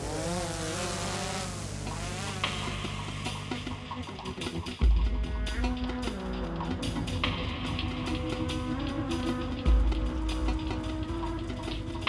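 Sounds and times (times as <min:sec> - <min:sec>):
drone propellers buzzing: 0:00.0 - 0:12.0.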